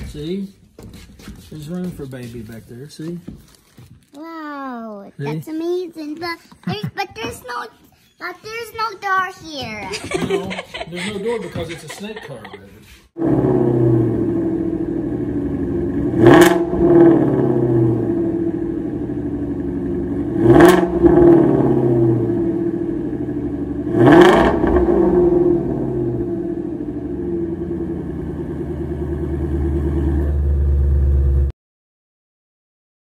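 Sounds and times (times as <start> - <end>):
car engine idling and revving: 13.2 - 31.5.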